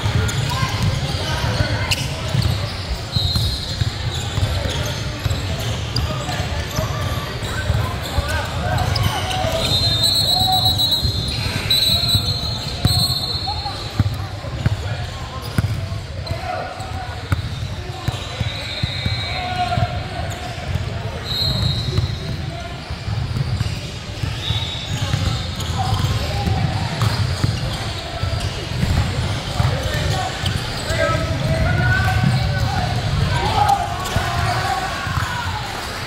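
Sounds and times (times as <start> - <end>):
voices echoing in a hall: 0.0 - 36.0.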